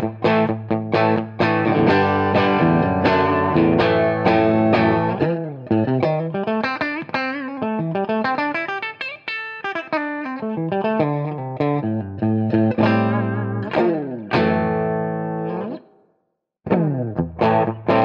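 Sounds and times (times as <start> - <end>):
second guitar riff: 0.0 - 15.9, 16.7 - 18.0
clean electric guitar riff: 0.0 - 16.0, 16.7 - 18.0.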